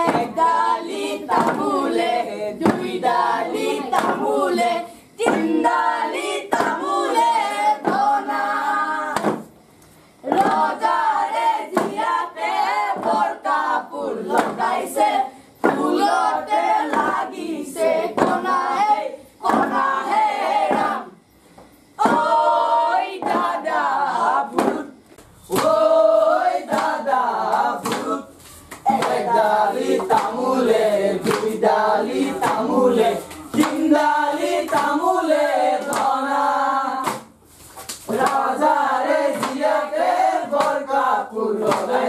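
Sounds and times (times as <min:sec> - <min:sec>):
hand claps: 0:00.0 - 0:18.7, 0:19.4 - 0:19.9, 0:24.5 - 0:26.0, 0:26.6 - 0:36.2, 0:37.0 - 0:42.0
chorus singing folk song: 0:00.0 - 0:42.0.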